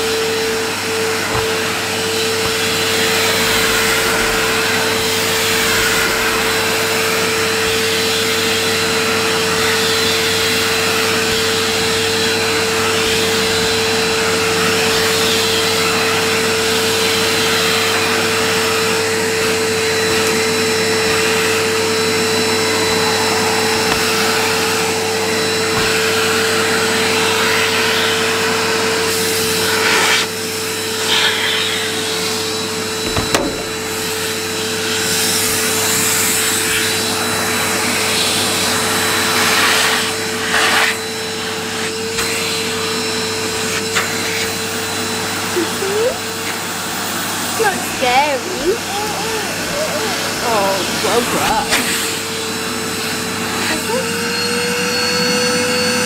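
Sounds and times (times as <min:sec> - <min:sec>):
vacuum cleaner running on carpet: 0:00.0 - 0:56.0.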